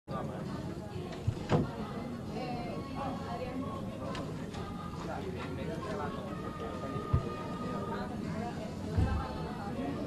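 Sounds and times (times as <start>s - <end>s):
people talking indistinctly: 0.1s - 10.0s.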